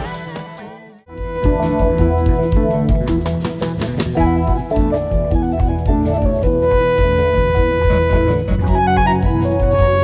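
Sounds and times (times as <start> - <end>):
jazz-rock band playing: 1.1 - 10.0.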